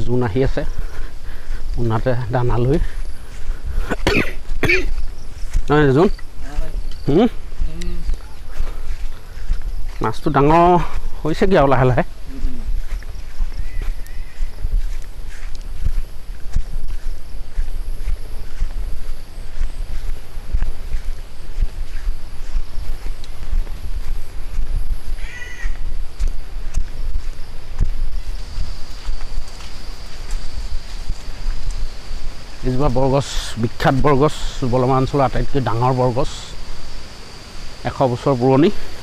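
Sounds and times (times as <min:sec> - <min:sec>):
wind rumble on microphone: 0:00.0 - 0:35.7
footsteps on dirt path: 0:00.0 - 0:39.0
short animal call: 0:25.2 - 0:25.8.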